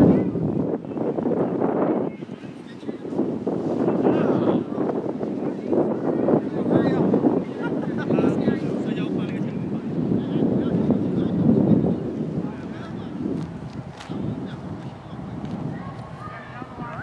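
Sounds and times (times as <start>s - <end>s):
wind buffeting microphone: 0.0s - 17.0s
distant shouting voices: 14.5s - 17.0s.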